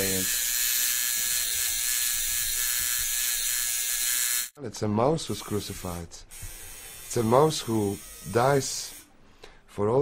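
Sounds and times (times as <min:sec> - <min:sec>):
electric tattoo machine buzzing: 0:00.0 - 0:04.6, 0:05.7 - 0:09.1.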